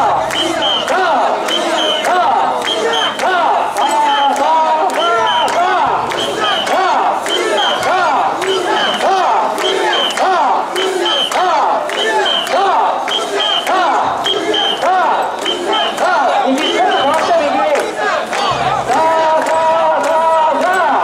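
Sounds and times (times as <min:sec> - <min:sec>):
crowd chanting in unison: 0:00.0 - 0:21.0
high whistle blasts: 0:00.3 - 0:00.9, 0:12.0 - 0:16.0.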